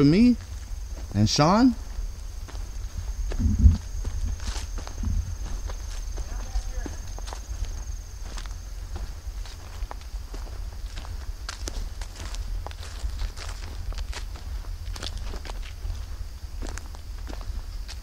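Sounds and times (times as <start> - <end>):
footsteps on grass and leaves: 0.0 - 18.0
steady high whine: 0.0 - 18.0
wind on microphone: 1.8 - 6.2.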